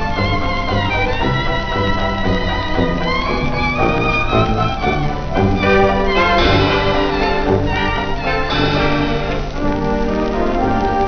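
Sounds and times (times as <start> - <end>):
dance band with theatre organ: 0.0 - 10.4
record surface crackle and hiss: 0.0 - 11.0.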